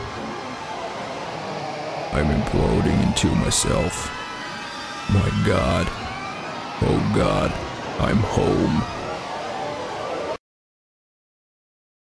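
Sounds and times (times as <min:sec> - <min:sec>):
steady electronic rushing noise: 0:00.0 - 0:10.4.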